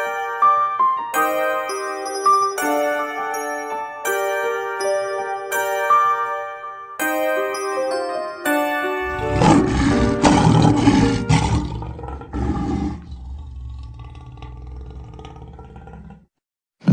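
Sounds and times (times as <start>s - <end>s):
bright chime notes: 1.2s - 9.7s
lion roar with deep rumble: 9.1s - 16.9s.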